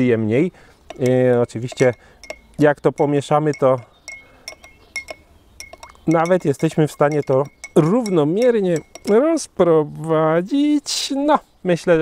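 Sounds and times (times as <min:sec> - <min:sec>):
spoon clinking in glass: 0:00.9 - 0:09.3.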